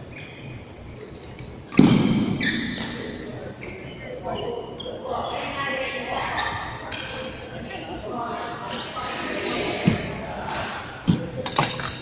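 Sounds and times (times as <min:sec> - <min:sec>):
voices: 0:02.4 - 0:12.0.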